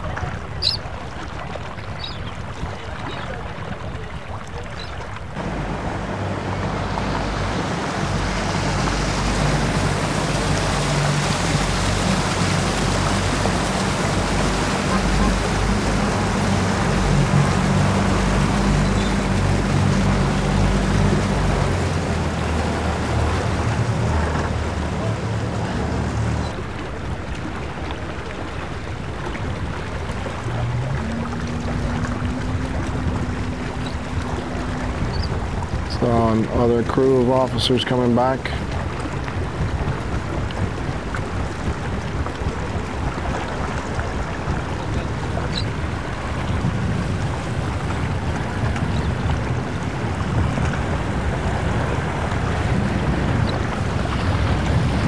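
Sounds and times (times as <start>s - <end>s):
outboard motors humming: 0.0s - 55.0s
second boat outboards humming: 0.0s - 55.0s
water and wind noise: 0.0s - 55.0s.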